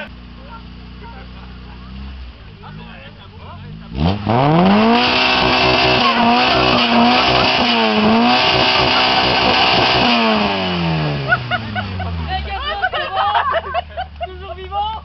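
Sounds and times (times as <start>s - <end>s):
car engine revving: 0.0s - 12.9s.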